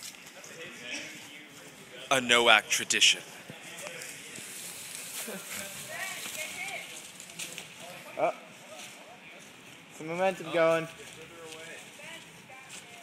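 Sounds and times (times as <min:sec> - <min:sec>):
faint voices outdoors: 0:00.0 - 0:13.0.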